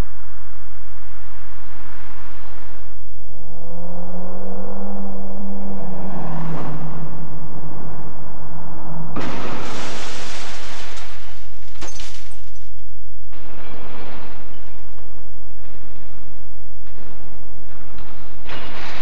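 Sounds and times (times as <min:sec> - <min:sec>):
car approaching with steady drone: 0:00.0 - 0:11.7.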